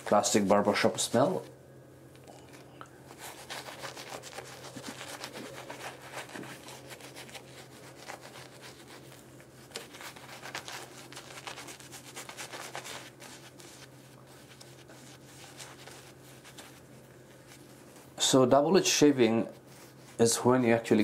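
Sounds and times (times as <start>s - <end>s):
shaving brush scrubbing lather: 3.1s - 16.9s.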